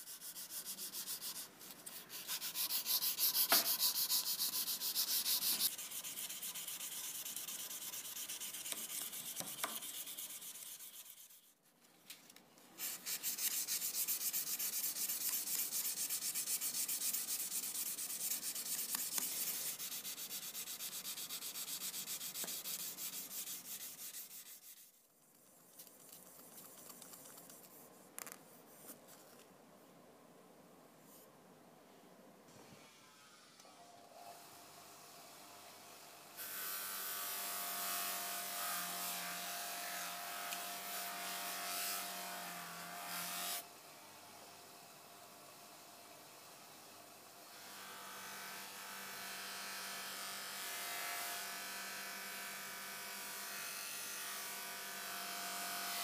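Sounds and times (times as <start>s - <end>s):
fine sandpaper rubbing: 0.0s - 11.6s, 12.8s - 29.3s
sandpaper rubbing on steel blade: 0.0s - 11.6s, 12.8s - 25.0s.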